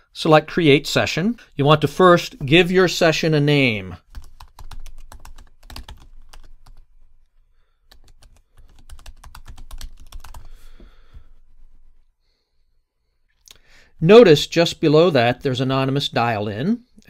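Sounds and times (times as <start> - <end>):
computer keyboard typing: 4.0 - 6.8, 7.9 - 10.6.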